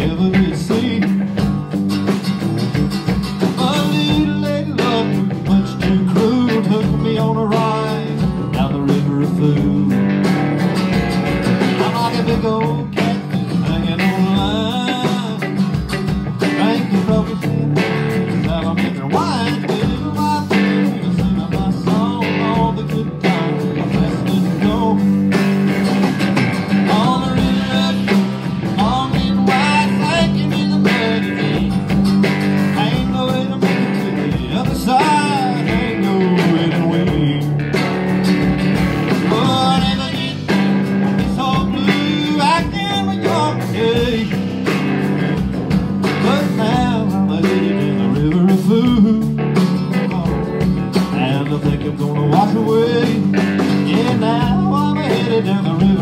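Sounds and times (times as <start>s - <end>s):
drum kit: 0.0s - 56.0s
electric guitar lead: 0.0s - 56.0s
strummed acoustic guitar: 0.0s - 56.0s.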